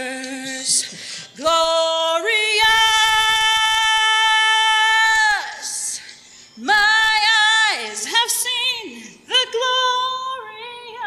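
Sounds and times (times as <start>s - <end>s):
woman singing a long note: 1.4s - 5.9s.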